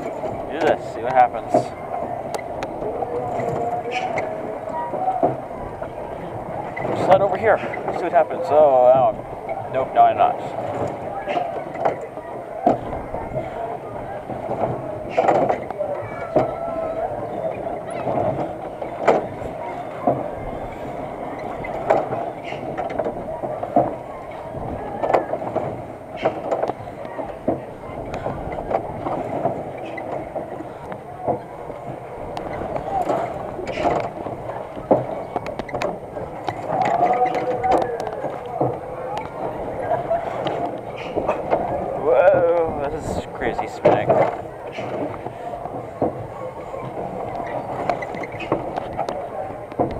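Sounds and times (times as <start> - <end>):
ride car knocks and clanks: 0.0 - 49.9
ride running noise: 0.0 - 49.9
voices: 0.0 - 49.9.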